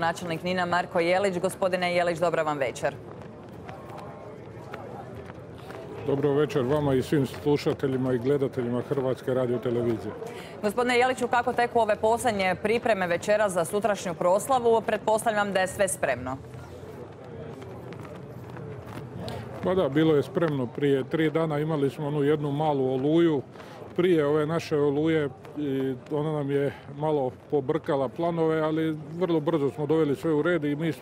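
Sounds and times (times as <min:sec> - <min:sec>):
faint distant voices: 0:03.0 - 0:10.9.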